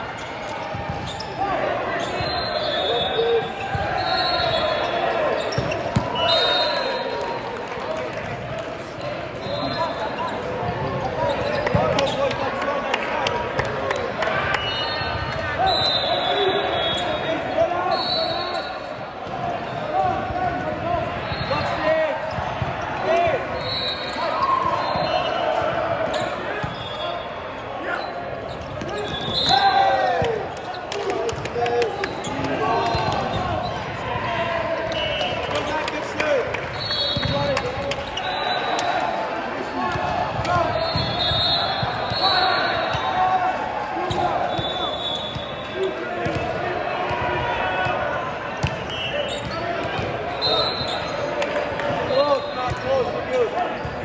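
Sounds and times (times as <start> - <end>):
sneakers squeaking on court: 0.1 - 6.6, 9.4 - 12.4, 23.6 - 27.2, 27.9 - 29.9, 36.7 - 38.9, 39.9 - 43.2, 44.1 - 46.5, 47.8 - 54.0.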